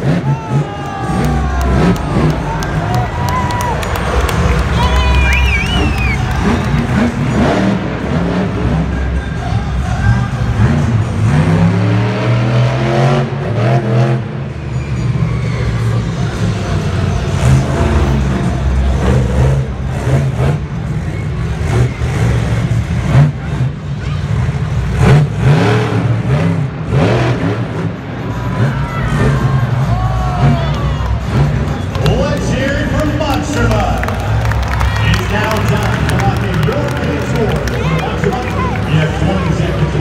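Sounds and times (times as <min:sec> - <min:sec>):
truck engine revving hard: 0:00.0 - 0:40.0.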